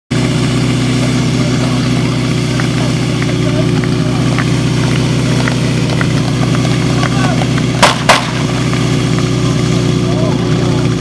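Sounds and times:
small engine idling: 0.1s - 11.0s
faint voices: 0.5s - 11.0s.

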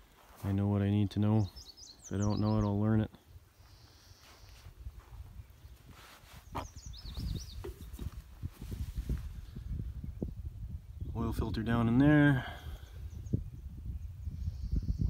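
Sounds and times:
bird chirping: 1.1s - 4.7s, 5.3s - 8.2s
low rumble on microphone: 6.4s - 15.0s.

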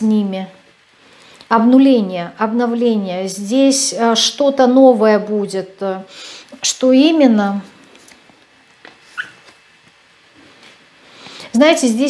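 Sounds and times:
high-pitched squeak: 9.1s - 9.4s.

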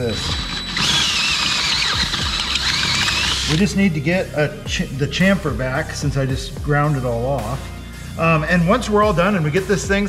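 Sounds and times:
cordless drill cutting metal: 0.0s - 3.8s.

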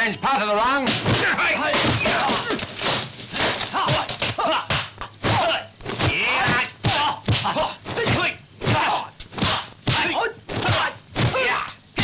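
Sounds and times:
sharp slaps of blows: 0.8s - 11.8s.

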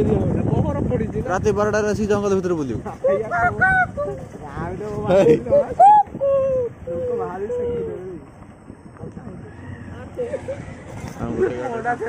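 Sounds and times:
motorcycle rumbling: 0.0s - 12.0s.

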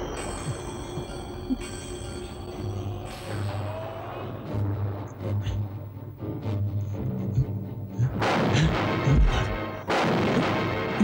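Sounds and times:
suspense music: 0.0s - 11.0s.

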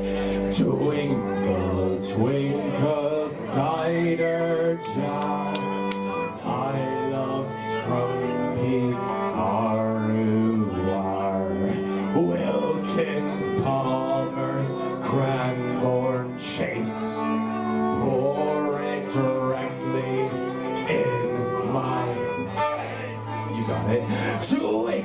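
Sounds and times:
fiddle melody: 0.0s - 25.0s
strummed guitar and mandolin: 0.0s - 25.0s.

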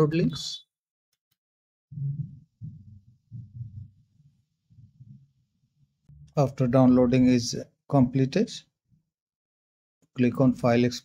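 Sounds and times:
low muffled bumps: 2.0s - 4.1s.

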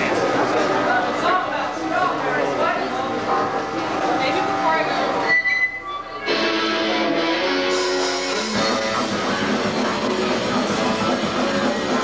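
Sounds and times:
voices in the room: 0.0s - 12.0s
electric guitar: 6.0s - 12.0s
rock band playing: 6.2s - 12.0s.

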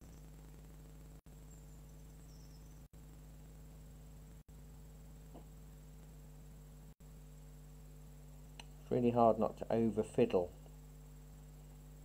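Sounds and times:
low electrical hum with hiss: 0.0s - 12.0s.

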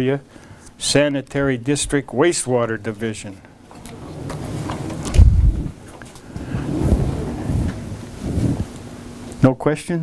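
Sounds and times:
microphone handling thumps: 3.8s - 8.8s.

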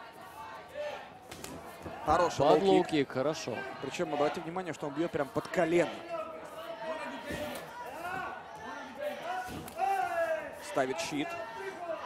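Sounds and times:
arena crowd and voices: 0.0s - 12.0s.

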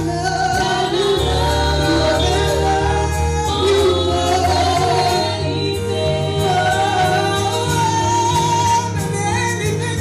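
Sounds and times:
gospel choir singing in harmony: 0.0s - 10.0s.

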